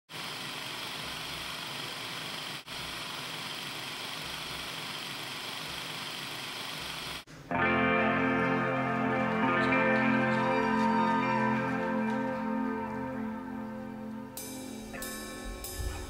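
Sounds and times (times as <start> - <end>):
music sustained chord: 7.5 - 16.0.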